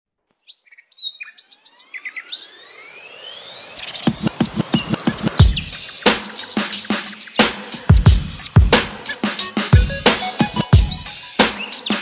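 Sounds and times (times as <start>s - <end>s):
bird chirps: 0.4s - 12.0s
rising tone: 1.6s - 6.5s
music beat: 3.8s - 12.0s.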